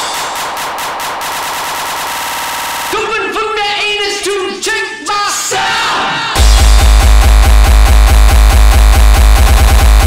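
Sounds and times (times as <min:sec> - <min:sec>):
electronic percussion roll: 0:00.0 - 0:03.0, 0:06.4 - 0:10.0.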